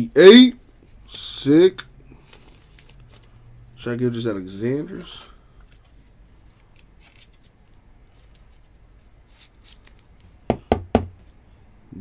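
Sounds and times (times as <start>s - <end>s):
handling card in plastic holder: 5.6s - 10.4s
sharp plastic knocks: 10.5s - 11.2s.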